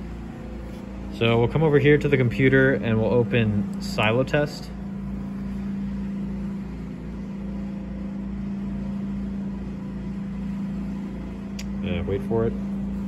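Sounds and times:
machine hum with throb: 0.0 - 13.0.

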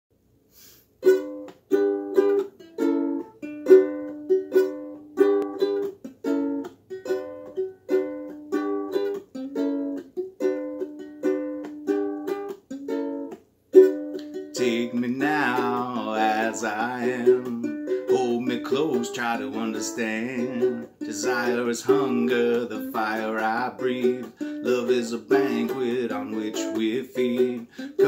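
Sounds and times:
ukulele strumming chords: 1.0 - 28.0.

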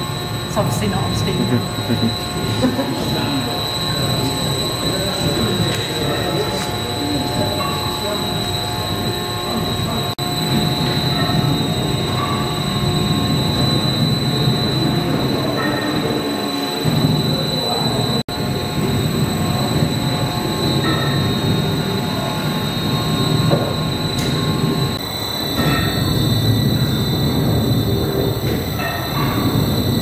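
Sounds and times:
faint steady whine: 0.0 - 30.0
steam engine running: 0.0 - 30.0.

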